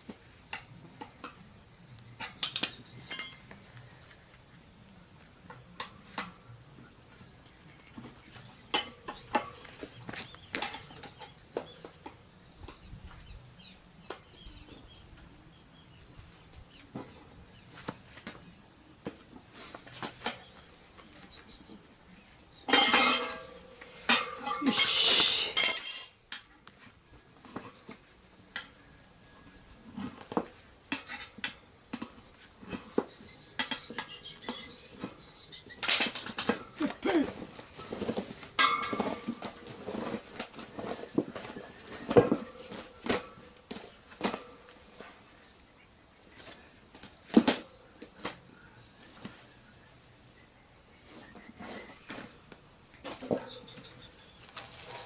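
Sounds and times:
tyre levers clinking on wheel rim: 35.8s - 45.2s.

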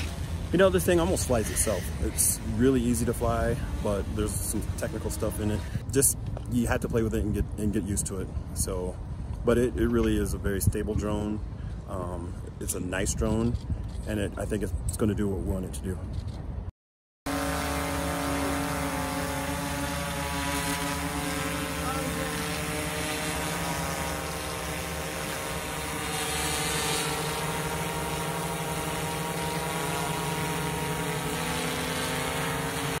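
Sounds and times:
drone rotors buzzing: 0.0s - 5.9s, 17.3s - 33.0s.

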